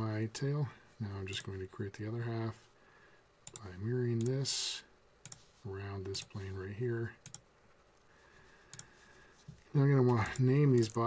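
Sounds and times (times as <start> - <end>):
computer mouse clicks: 3.4 - 4.4, 5.2 - 5.4, 7.2 - 7.5, 8.7 - 8.9.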